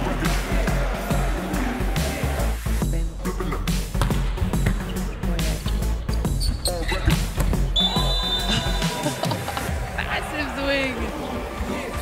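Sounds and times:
music with steady beat: 0:00.0 - 0:09.8
referee's whistle blowing: 0:07.7 - 0:09.1.

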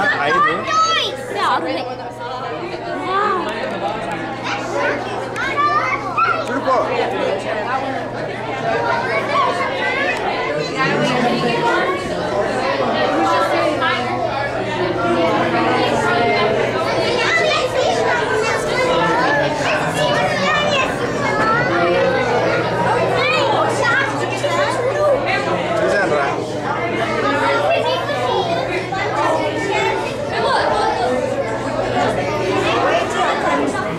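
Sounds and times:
crowd chatter: 0:00.0 - 0:33.9
steady low hum: 0:10.5 - 0:33.9.

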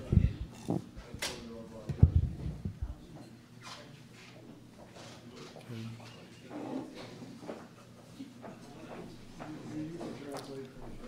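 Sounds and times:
dull knocks and bumps: 0:01.9 - 0:03.0.

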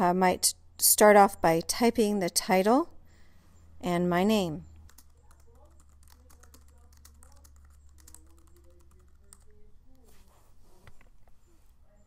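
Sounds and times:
low steady hum: 0:00.0 - 0:12.0
keyboard typing: 0:04.8 - 0:09.7.

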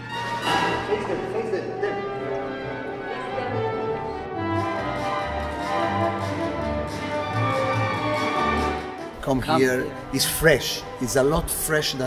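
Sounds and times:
orchestral bowed strings: 0:00.0 - 0:12.0.

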